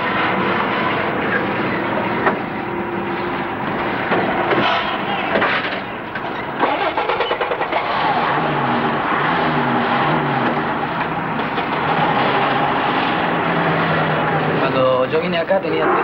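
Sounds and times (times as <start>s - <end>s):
vehicle running noise from cab: 0.0s - 16.0s.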